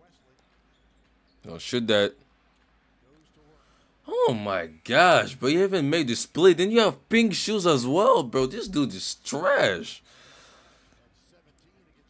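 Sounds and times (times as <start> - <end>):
faint basketball game broadcast: 0.0 - 12.0.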